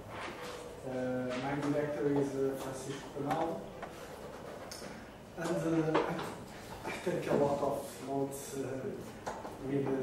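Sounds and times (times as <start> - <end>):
man speaking: 0.8 - 3.7, 5.4 - 10.0.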